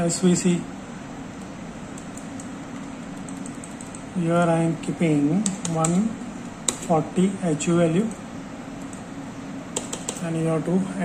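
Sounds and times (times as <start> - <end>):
equipment fans and ventilation hum: 0.0 - 11.0.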